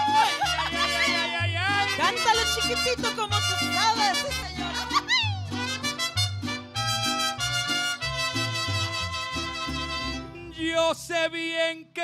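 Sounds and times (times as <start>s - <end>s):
low bass notes: 0.0s - 10.6s
mariachi band playing: 0.0s - 11.5s
trumpet notes: 0.2s - 5.0s, 5.6s - 10.5s.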